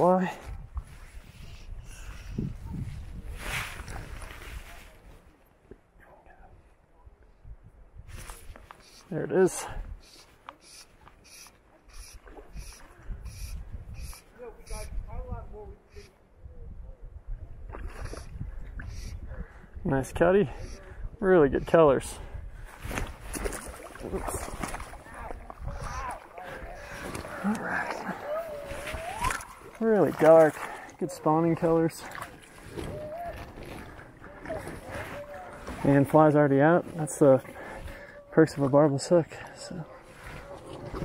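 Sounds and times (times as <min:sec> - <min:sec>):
wind rumbling on microphone: 0:00.0 - 0:05.4, 0:06.3 - 0:09.0, 0:09.6 - 0:29.8, 0:31.8 - 0:36.2, 0:39.9 - 0:41.0
water sloshing and lapping: 0:10.0 - 0:14.3, 0:22.6 - 0:41.0
short sharp splashes: 0:22.8 - 0:26.4, 0:32.0 - 0:34.9.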